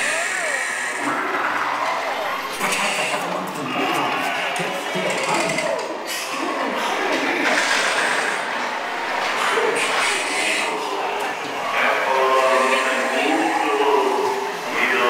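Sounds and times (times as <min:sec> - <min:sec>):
voices from speakers: 0:00.0 - 0:15.0.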